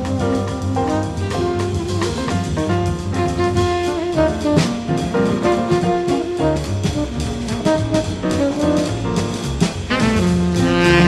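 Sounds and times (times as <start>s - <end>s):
double bass line: 0.0s - 11.0s
drums and cymbal strokes: 0.0s - 11.0s
piano: 0.0s - 11.0s
tenor saxophone melody: 0.0s - 11.0s.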